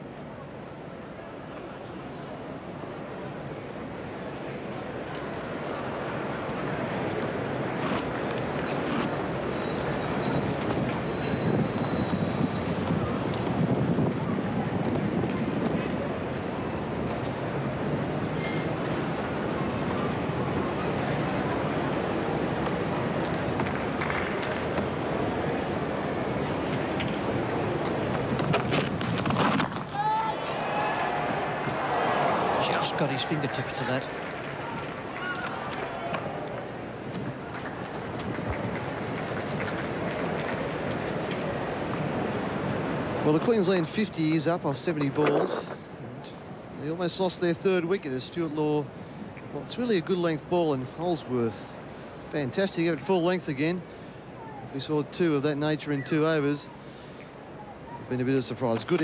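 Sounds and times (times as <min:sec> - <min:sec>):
crowd noise: 0:00.0 - 0:59.0.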